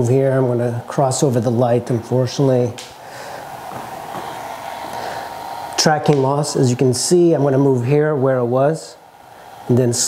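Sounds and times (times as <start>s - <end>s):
fan whirring: 0.0s - 10.0s.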